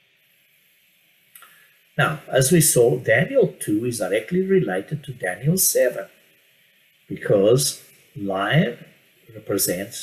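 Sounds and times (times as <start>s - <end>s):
soft intake of breath: 1.4s - 1.9s.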